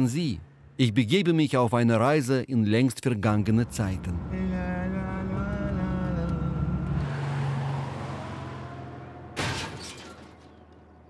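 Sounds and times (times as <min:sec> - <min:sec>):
car engine hum: 0:03.2 - 0:11.0.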